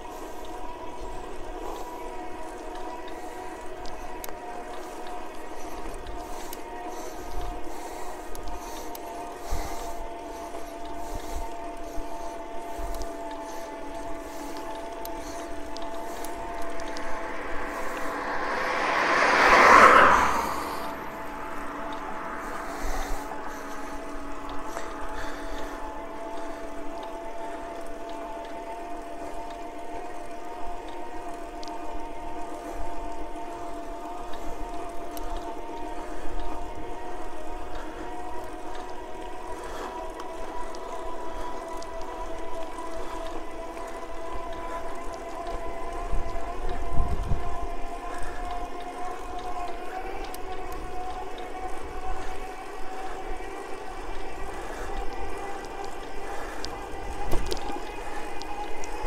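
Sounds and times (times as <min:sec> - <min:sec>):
electric bicycle motor whining: 0:00.0 - 0:59.0
wind rumble on microphone: 0:00.0 - 0:59.0.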